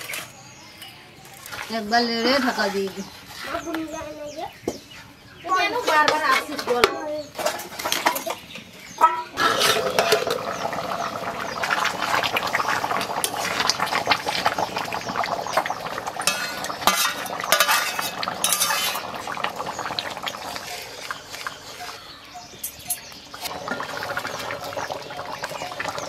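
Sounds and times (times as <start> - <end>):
thick curry bubbling: 7.3 - 26.0
ladle scraping metal wok: 9.0 - 10.6, 16.2 - 19.2.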